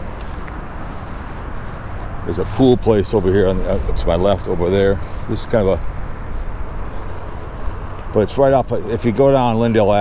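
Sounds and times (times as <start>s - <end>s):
highway traffic noise: 0.0s - 10.0s.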